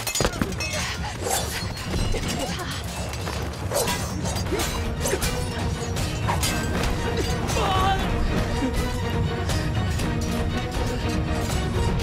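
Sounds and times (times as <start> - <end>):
glass clinking and shattering: 0.0 - 8.0.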